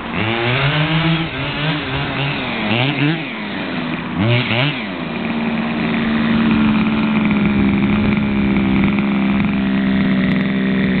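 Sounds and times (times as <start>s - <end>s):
rc buggy two-stroke engine running: 0.0s - 11.0s.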